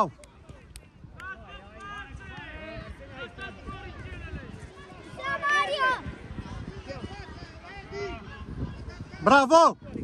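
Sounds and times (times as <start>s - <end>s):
children calling and shouting: 0.0s - 10.0s.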